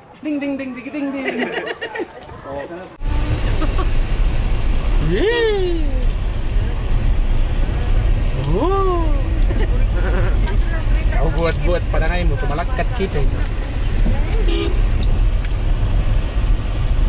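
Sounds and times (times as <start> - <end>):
car engine and tyres rumbling: 0.0 - 17.0
person calling out: 5.0 - 6.2, 8.4 - 9.5.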